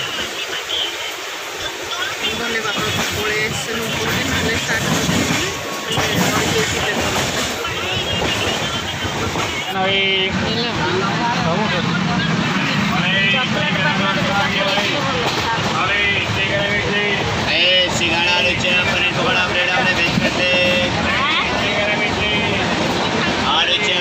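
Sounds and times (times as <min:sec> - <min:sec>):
people talking: 0:00.0 - 0:24.0
train running noise: 0:00.0 - 0:24.0.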